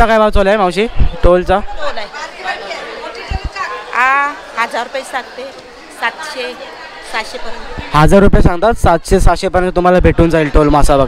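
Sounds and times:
close speech: 0.0s - 11.0s
indistinct market chatter: 0.0s - 11.0s.

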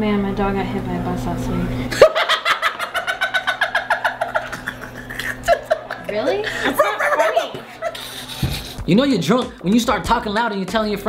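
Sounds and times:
man laughing hard: 2.0s - 8.9s.

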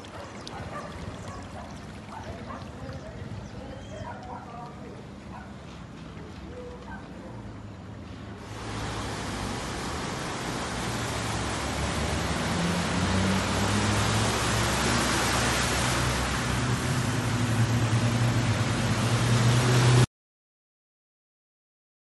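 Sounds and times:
tyres spraying through water: 0.0s - 3.6s, 8.4s - 20.1s
vehicle engine hum: 0.0s - 20.1s.

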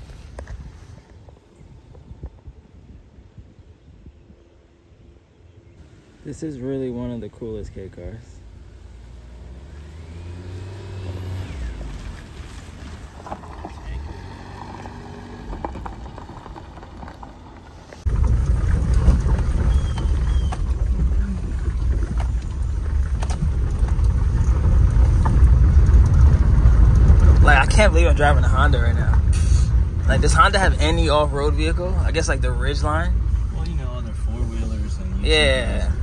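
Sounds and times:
engine and road rumble in cabin: 0.0s - 36.0s
car engine: 5.6s - 36.0s.

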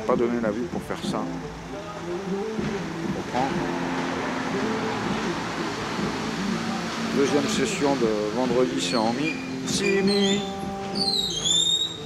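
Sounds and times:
vehicle engine running: 2.4s - 8.9s.

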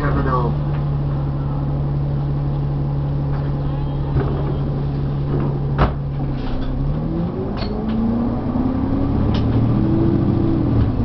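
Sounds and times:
bus diesel engine idling: 0.0s - 6.8s.

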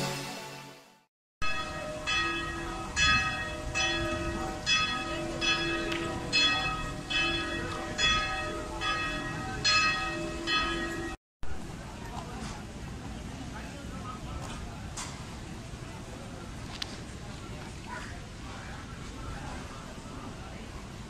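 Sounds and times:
church bells ringing: 1.4s - 11.2s
street background noise: 1.4s - 21.0s.

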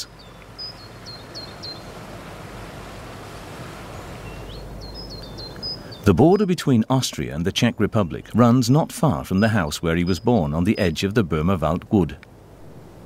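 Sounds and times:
outdoor background hiss: 0.0s - 13.0s
songbird singing: 0.0s - 13.0s.

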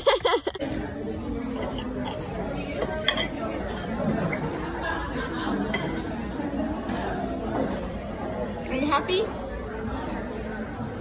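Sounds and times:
background chatter of diners: 0.0s - 11.0s
cutlery and dishes clinking: 0.6s - 4.7s, 5.5s - 7.5s.

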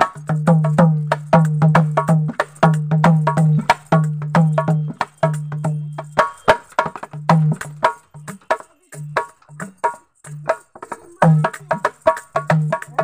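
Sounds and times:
hand drum played in quick rhythm: 0.0s - 13.0s.

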